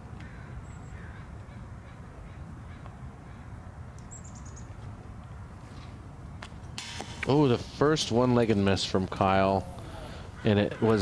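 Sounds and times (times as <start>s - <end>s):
sharp knock: 6.8s - 7.4s
bird calling: 9.3s - 11.0s.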